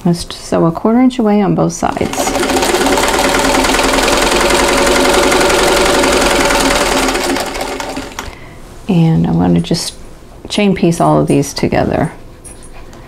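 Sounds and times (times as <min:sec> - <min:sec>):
sewing machine stitching: 0:01.8 - 0:08.4.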